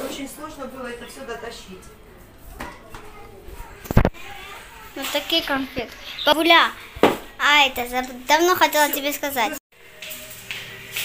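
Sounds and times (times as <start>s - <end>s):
faint voices: 1.8s - 6.9s.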